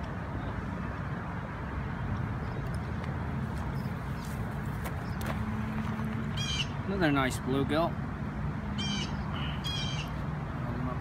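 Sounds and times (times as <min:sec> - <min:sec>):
bird giving harsh calls: 0:06.4 - 0:06.8, 0:08.8 - 0:10.2.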